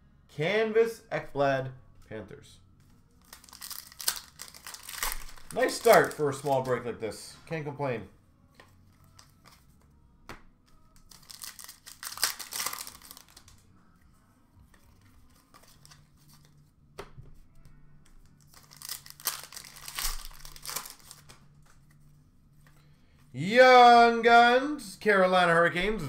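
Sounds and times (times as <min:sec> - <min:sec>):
card pack wrappers tearing: 0:03.2 - 0:06.8, 0:11.0 - 0:13.6, 0:15.2 - 0:16.5, 0:18.3 - 0:21.4.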